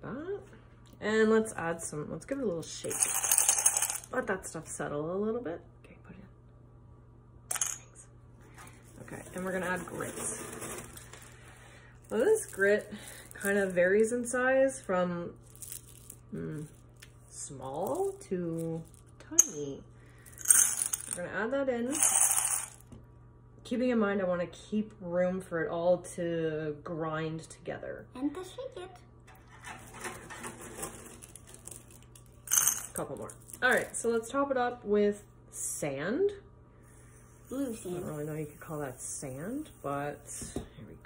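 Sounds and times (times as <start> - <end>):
plastic mesh bag rustling: 9.1 - 11.4
stones clicking and rattling: 15.4 - 17.2.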